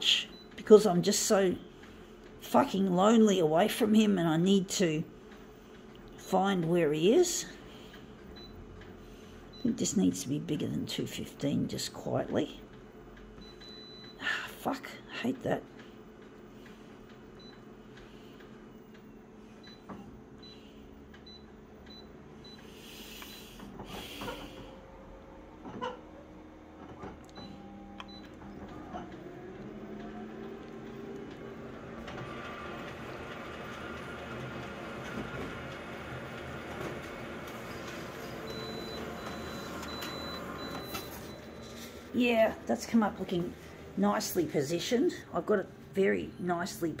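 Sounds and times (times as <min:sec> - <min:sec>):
copier beeps: 0:00.1 - 0:00.6, 0:08.2 - 0:08.6, 0:09.5 - 0:10.0, 0:13.4 - 0:14.2, 0:17.4 - 0:17.7, 0:18.7 - 0:23.6, 0:26.7 - 0:30.0, 0:35.6 - 0:42.6
copier running and printing: 0:00.2 - 0:14.2, 0:15.4 - 0:46.9.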